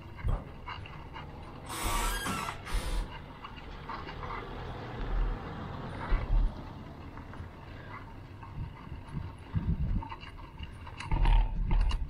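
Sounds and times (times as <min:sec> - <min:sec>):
road noise: 0:00.0 - 0:12.0
car passing: 0:01.1 - 0:08.9
wind buffeting microphone: 0:02.7 - 0:12.0.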